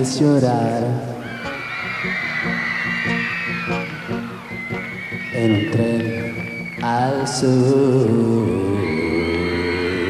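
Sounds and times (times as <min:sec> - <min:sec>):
live band playing: 0:01.2 - 0:06.8
person singing: 0:05.3 - 0:10.0.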